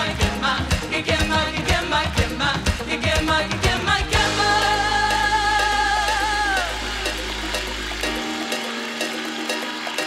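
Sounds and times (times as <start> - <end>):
worship band music: 0.0 - 10.0.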